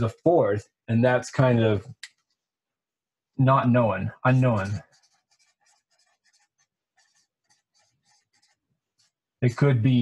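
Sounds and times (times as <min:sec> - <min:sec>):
marker pen writing on board: 0:04.3 - 0:09.2.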